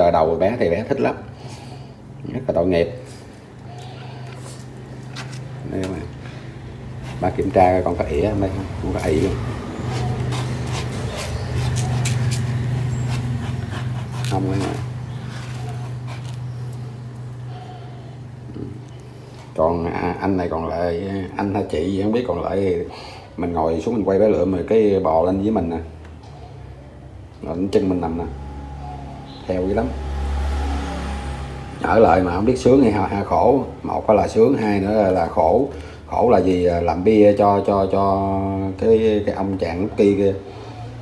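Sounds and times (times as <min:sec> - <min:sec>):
steady low hum: 0:00.0 - 0:30.2.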